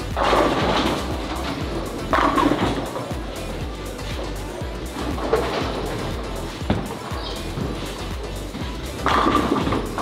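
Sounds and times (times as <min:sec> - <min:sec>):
background music: 0:00.0 - 0:10.0
bowling ball rolling: 0:00.1 - 0:03.4, 0:05.0 - 0:08.2, 0:09.0 - 0:10.0.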